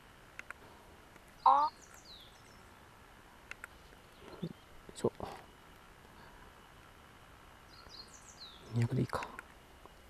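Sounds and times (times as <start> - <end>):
loud pitched bird call: 1.4 - 2.3.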